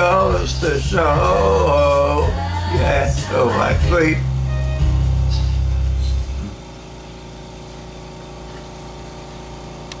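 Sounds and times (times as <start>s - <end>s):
electrical hum with buzz: 0.0s - 10.0s
low backing track note: 3.4s - 7.2s.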